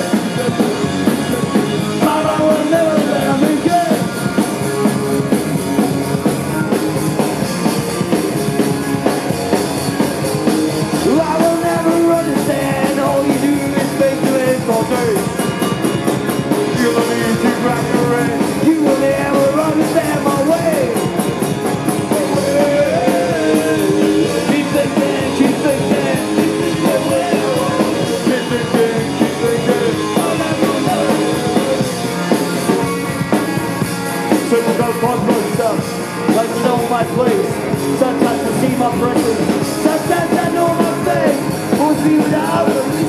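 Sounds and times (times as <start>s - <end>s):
punk rock band playing: 0.0s - 43.0s.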